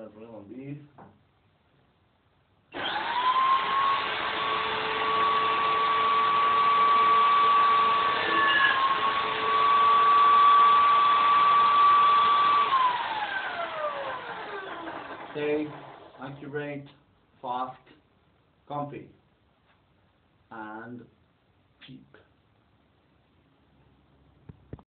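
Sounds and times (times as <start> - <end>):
electric drill whining: 2.7 - 16.2.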